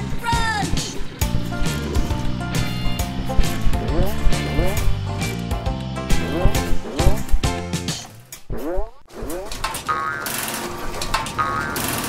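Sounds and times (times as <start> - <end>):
metal roller shutter rattling: 9.5 - 12.0.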